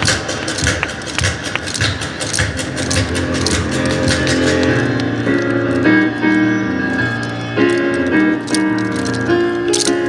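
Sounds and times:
wooden clapper clacks: 0.0 - 6.0
dance music: 0.0 - 10.0.

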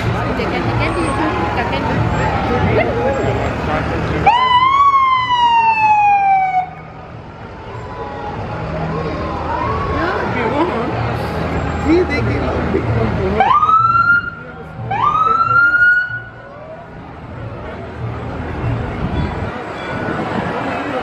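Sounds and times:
crowd voices: 0.0 - 21.0
low rumble of passing vehicles: 0.0 - 21.0
fire vehicle siren wailing: 4.2 - 10.4, 13.4 - 16.8.

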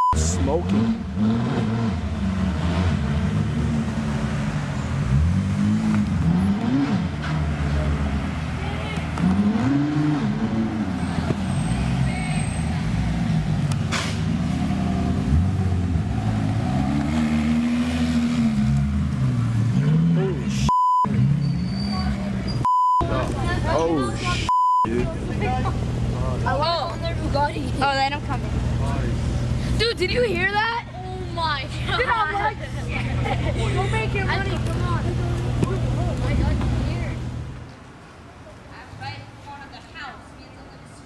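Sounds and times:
censor bleep tone: 0.0 - 0.2, 20.7 - 21.1, 22.6 - 23.1, 24.5 - 24.9
car engines revving: 0.0 - 38.4.

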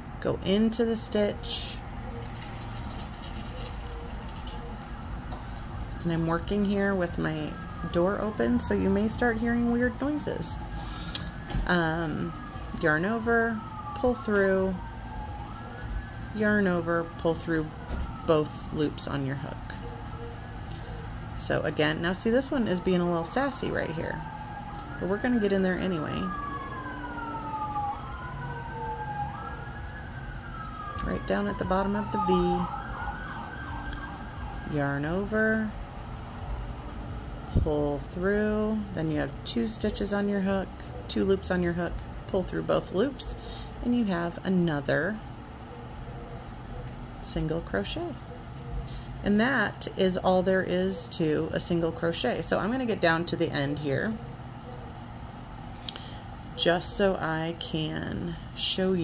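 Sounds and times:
emergency vehicle siren wailing: 0.0 - 59.0
traffic rumble: 0.0 - 59.0.

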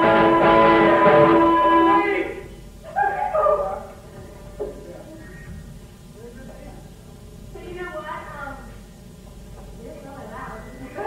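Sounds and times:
short pitch-bending cry: 0.0 - 3.9.

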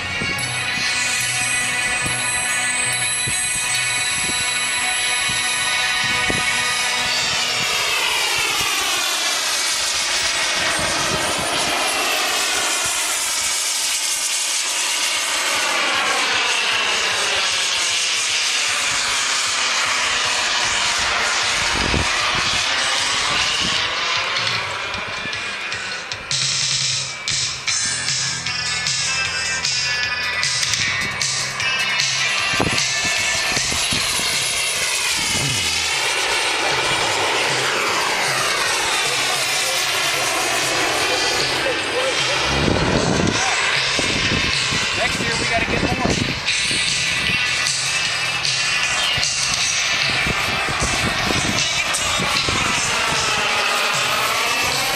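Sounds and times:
jet aircraft flying past: 0.0 - 54.9.

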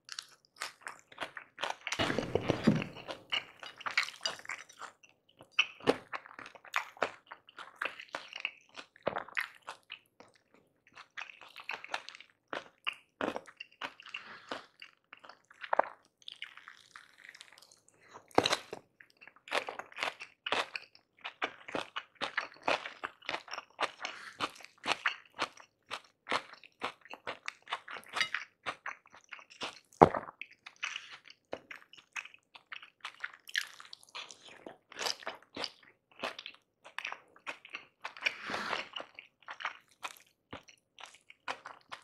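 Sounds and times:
crisp crunchy chewing: 0.0 - 42.0.

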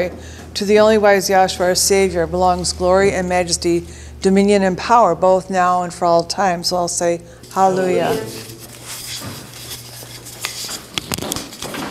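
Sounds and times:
soft rustling and handling: 7.5 - 11.9.

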